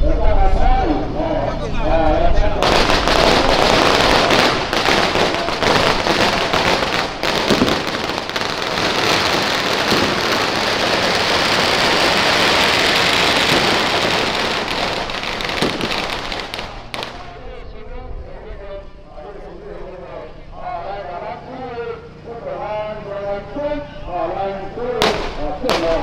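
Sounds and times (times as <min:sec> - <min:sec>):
firecrackers crackling: 0:02.6 - 0:17.4, 0:24.8 - 0:26.0.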